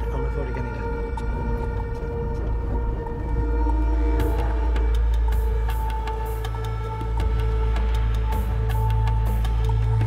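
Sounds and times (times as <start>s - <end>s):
deep steady drone: 0.0s - 10.0s.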